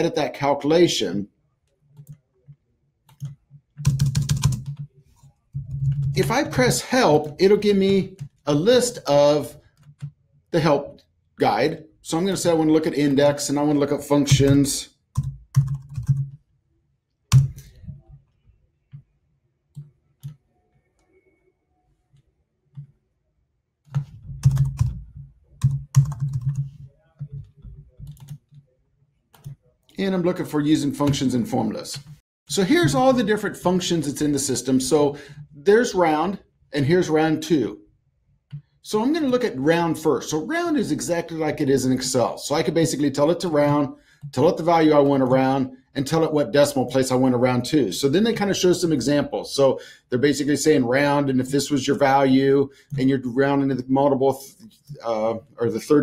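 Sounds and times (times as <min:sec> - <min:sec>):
computer keyboard typing: 0:01.9 - 0:08.5, 0:09.7 - 0:10.2, 0:14.3 - 0:16.4, 0:17.3 - 0:17.9, 0:23.8 - 0:28.6, 0:29.3 - 0:29.6.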